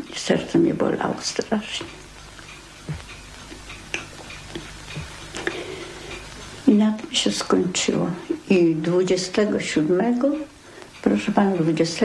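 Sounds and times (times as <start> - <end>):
light ticking: 0.0 - 12.0
steady low hum: 0.0 - 12.0.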